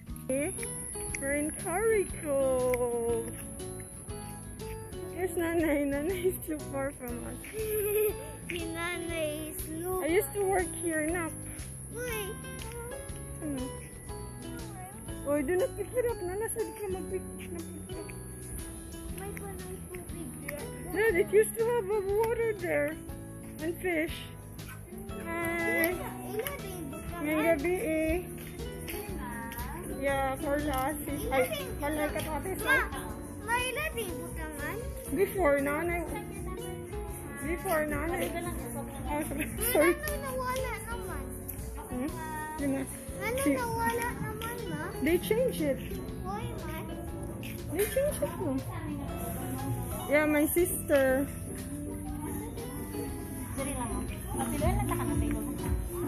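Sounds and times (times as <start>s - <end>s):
background music sustained notes: 0.0s - 56.0s
child's voice: 7.4s - 11.3s, 11.9s - 15.7s, 19.1s - 21.0s, 25.2s - 27.9s, 30.7s - 35.1s, 35.8s - 45.1s, 46.1s - 49.1s.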